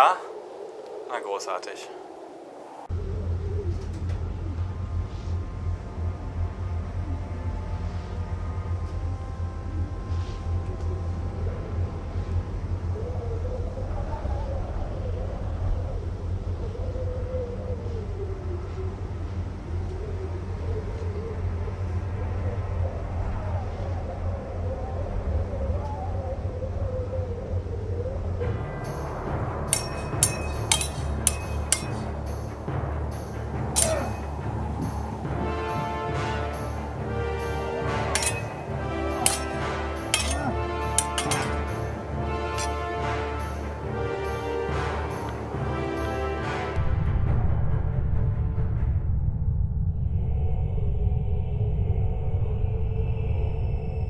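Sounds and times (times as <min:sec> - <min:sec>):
film score music: 0:00.0 - 0:54.0
low steady rumble: 0:02.8 - 0:44.2
sabre blades clashing: 0:29.7 - 0:32.2, 0:33.8 - 0:34.4, 0:38.1 - 0:42.8.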